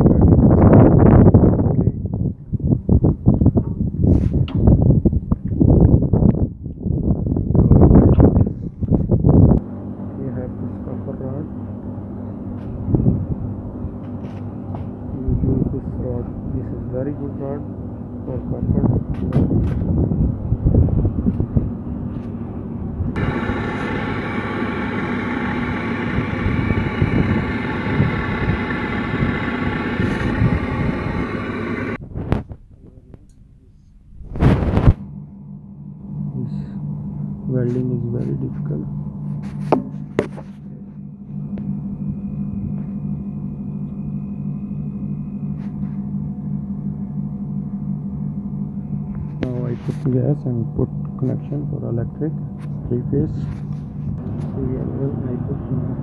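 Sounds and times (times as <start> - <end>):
steady mechanical hum: 0.0 - 56.0
person talking: 37.5 - 38.9, 49.4 - 53.6.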